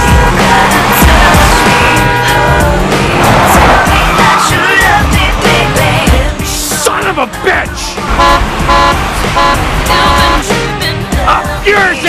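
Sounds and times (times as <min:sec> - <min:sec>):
car horn honking: 0:00.0 - 0:02.8, 0:08.0 - 0:10.5.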